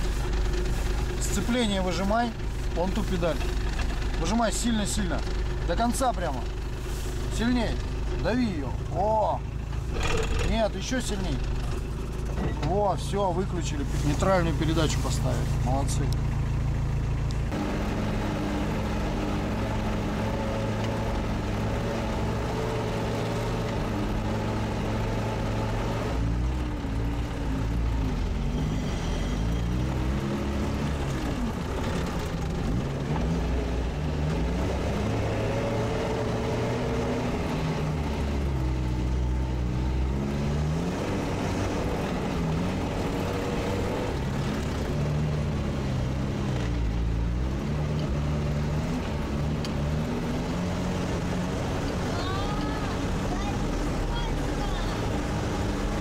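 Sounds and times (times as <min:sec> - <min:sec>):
diesel engine droning: 0:00.0 - 0:56.0.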